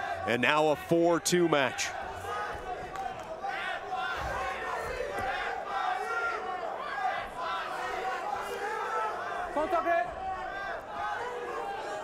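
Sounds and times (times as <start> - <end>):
crowd shouting: 0.0 - 12.0.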